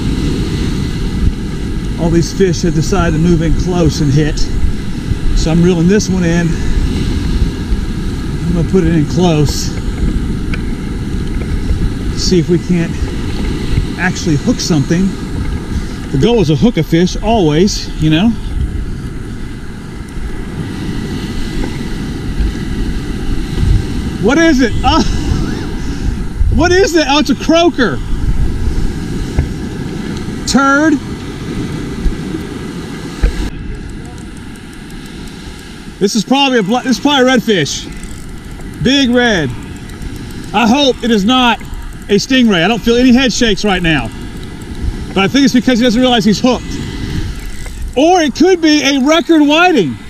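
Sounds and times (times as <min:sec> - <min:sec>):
surf washing: 0:00.0 - 0:50.0
wind rumbling on microphone: 0:00.0 - 0:50.0.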